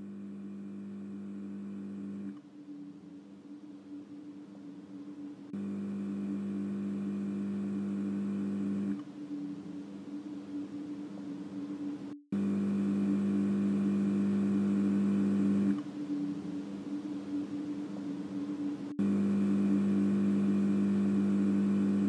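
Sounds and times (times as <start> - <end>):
steady hum: 0.0 - 22.0.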